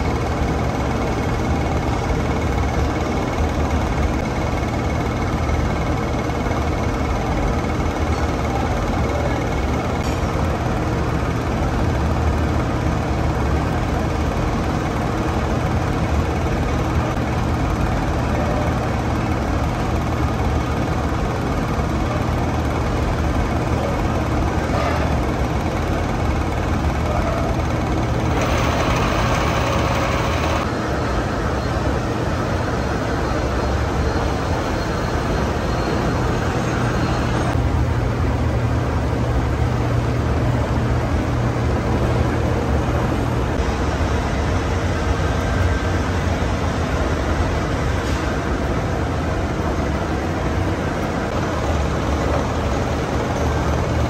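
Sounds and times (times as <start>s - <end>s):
machine running with low drone: 0.0s - 54.0s.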